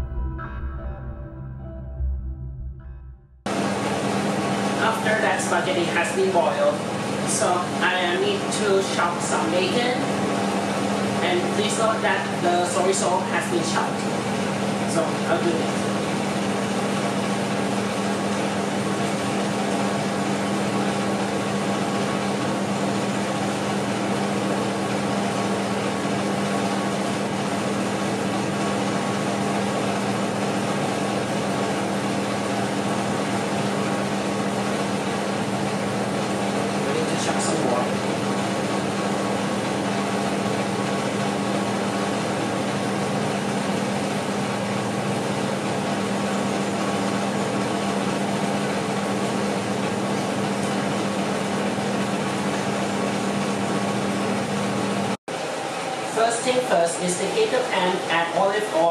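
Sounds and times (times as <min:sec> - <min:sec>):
machine hum: 0:00.0 - 0:58.9.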